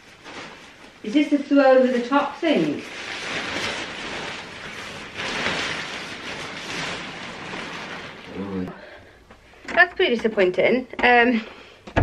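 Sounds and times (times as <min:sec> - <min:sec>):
tent fabric rustling: 0:00.0 - 0:08.7.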